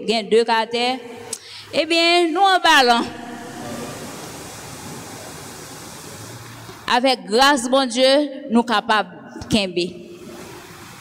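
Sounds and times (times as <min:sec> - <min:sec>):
steady background hiss: 0:00.0 - 0:08.8, 0:09.8 - 0:11.0.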